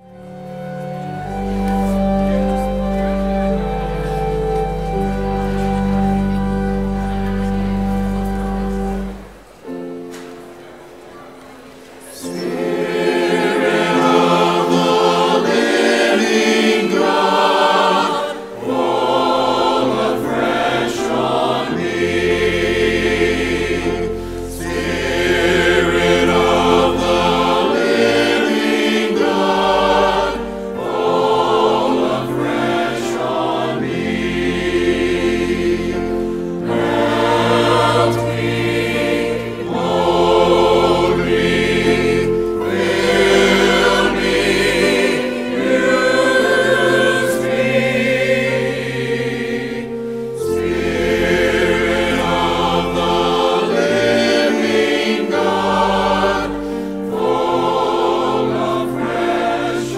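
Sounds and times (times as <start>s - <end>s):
keyboard bass notes: 0.0s - 10.1s, 12.4s - 59.8s
church choir singing: 0.0s - 59.9s.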